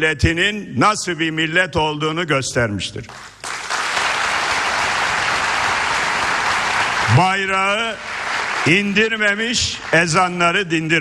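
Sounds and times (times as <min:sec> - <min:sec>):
audience applauding: 0:03.1 - 0:10.4.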